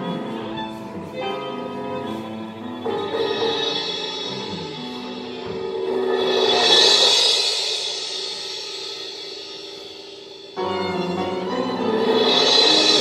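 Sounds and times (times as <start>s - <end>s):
held instrument notes: 0.0s - 8.6s
cymbal swell: 2.6s - 10.6s, 11.8s - 13.0s.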